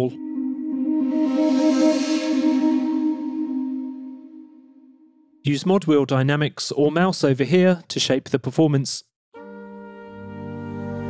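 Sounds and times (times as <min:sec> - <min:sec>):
long held breathy instrument note: 0:00.1 - 0:05.4.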